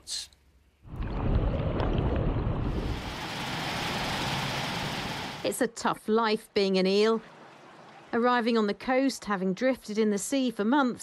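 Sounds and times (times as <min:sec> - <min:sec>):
river water rushing over weir: 0:02.8 - 0:05.4.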